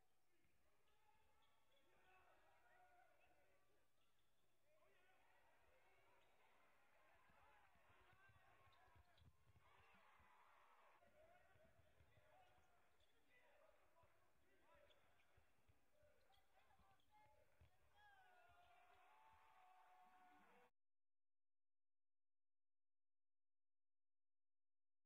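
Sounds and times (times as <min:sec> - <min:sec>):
distant voices in arena: 0:00.3 - 0:20.7.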